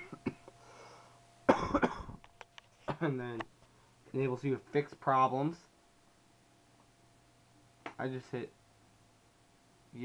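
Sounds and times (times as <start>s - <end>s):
person coughing: 0.0s - 0.5s, 1.5s - 2.2s.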